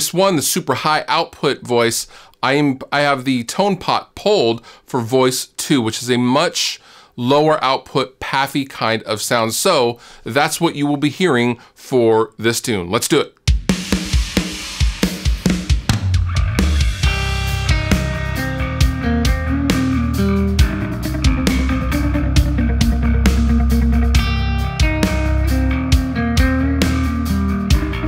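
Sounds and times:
drums: 0:13.4 - 0:28.0
low bass: 0:15.9 - 0:28.0
electric guitar with delay: 0:16.1 - 0:28.0.

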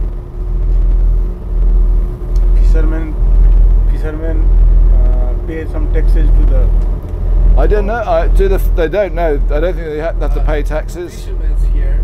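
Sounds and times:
boat engine rumbling: 0:00.0 - 0:12.0.

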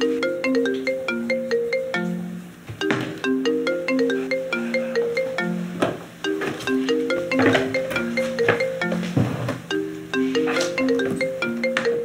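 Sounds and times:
phone ringtone melody: 0:00.0 - 0:12.0.

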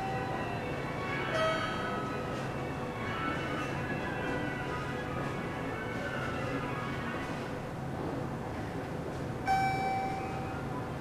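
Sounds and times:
station concourse hum: 0:00.0 - 0:11.0
bell-like chime: 0:09.5 - 0:10.5.

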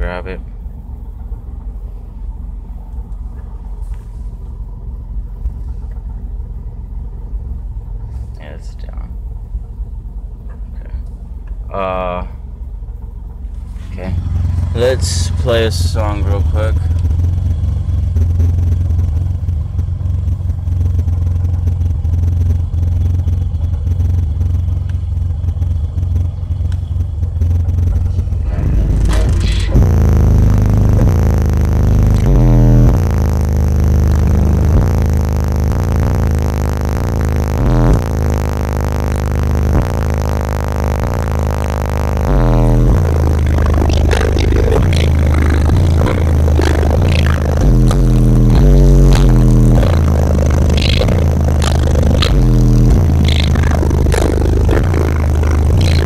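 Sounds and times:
bass-heavy song on car stereo: 0:13.3 - 0:56.0.

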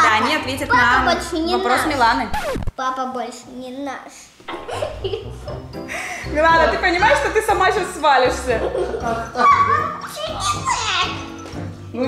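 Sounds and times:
girl squealing and laughing: 0:09.3 - 0:11.0.

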